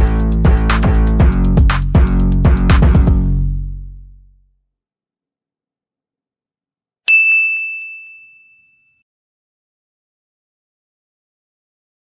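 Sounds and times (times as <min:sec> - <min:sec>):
bell-like ding: 0:07.1 - 0:09.0.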